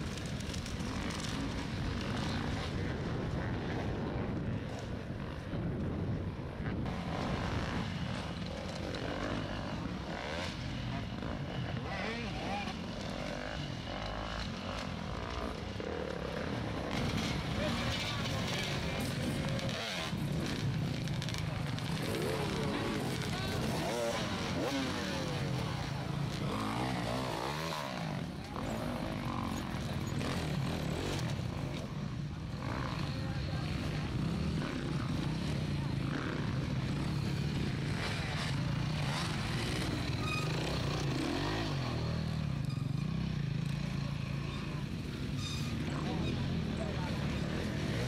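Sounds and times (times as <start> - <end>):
motorcycle engines revving: 0.0 - 48.0
spectators' voices: 16.6 - 42.1.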